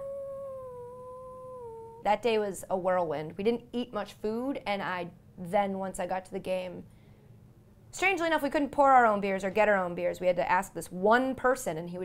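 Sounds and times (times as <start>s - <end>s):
woman whining: 0.0s - 2.1s.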